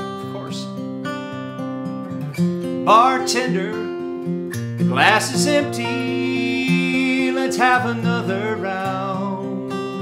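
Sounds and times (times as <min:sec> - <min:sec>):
acoustic guitar strumming: 0:00.0 - 0:10.0
person singing: 0:02.8 - 0:04.0, 0:04.8 - 0:10.0.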